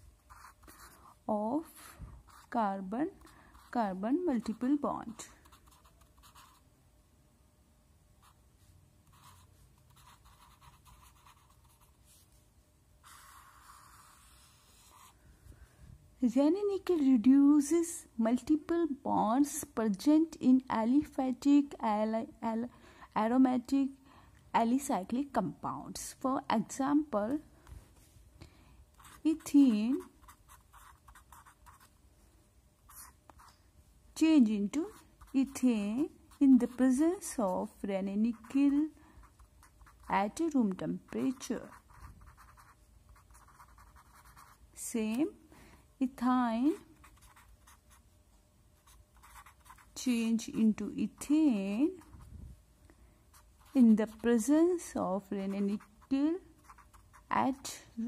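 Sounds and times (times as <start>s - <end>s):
marker pen scratching on paper: 0.3s - 6.6s, 9.0s - 12.3s, 13.0s - 15.2s, 29.0s - 31.9s, 32.9s - 33.6s, 34.7s - 44.6s, 46.6s - 48.1s, 48.8s - 50.6s, 51.2s - 52.3s, 53.3s - 54.5s, 55.2s - 57.8s.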